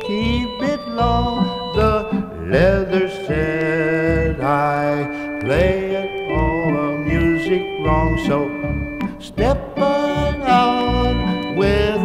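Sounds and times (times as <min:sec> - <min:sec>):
bouncing bass line: 0:00.0 - 0:12.0
lounge organ music: 0:00.0 - 0:12.0.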